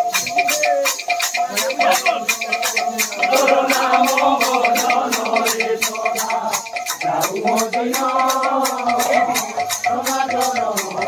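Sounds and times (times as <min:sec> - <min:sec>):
drum: 0:00.0 - 0:11.0
hand cymbals struck rhythmically: 0:00.0 - 0:11.0.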